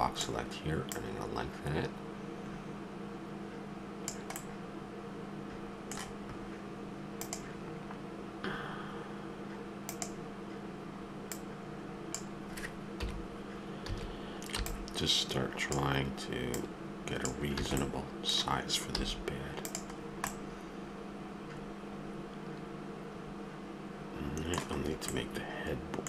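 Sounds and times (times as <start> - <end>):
low electrical hum: 0.0 - 26.0
computer keys and mouse clicks: 4.1 - 4.5, 5.9 - 6.2, 7.2 - 7.6, 9.9 - 10.2, 11.3 - 11.5, 13.8 - 15.0, 16.5 - 17.9, 18.9 - 20.4, 24.4 - 25.2.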